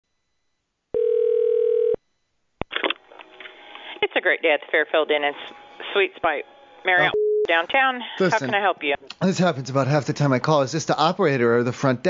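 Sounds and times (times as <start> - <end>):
telephone ringback tone: 1.0 - 2.0
voice on phone line: 6.9 - 9.0.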